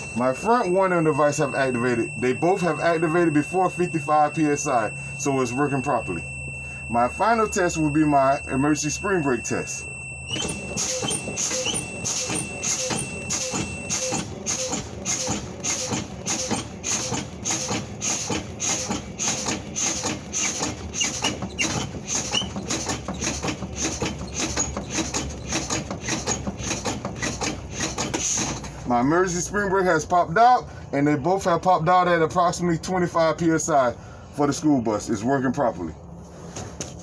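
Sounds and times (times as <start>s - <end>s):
low-air warning buzzer: 0.0s - 28.3s
air brakes exhausting air: 4.9s - 5.2s, 6.5s - 6.9s, 23.8s - 28.9s
bus engine idling: 10.3s - 35.4s.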